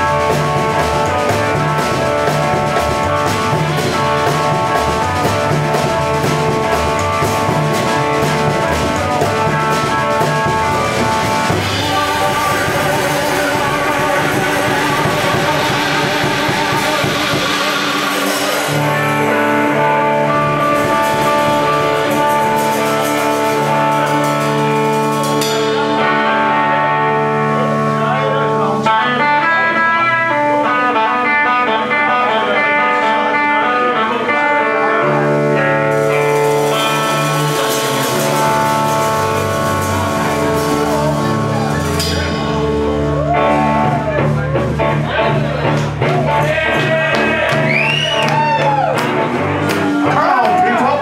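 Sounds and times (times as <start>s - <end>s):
drum kit: 0.0s - 51.0s
electric guitar: 0.0s - 51.0s
bowed double bass: 35.0s - 50.2s.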